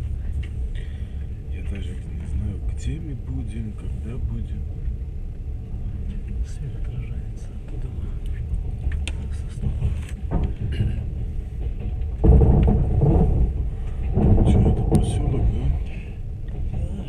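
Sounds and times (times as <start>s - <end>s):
train wheels rumbling on rails: 0.0s - 17.0s.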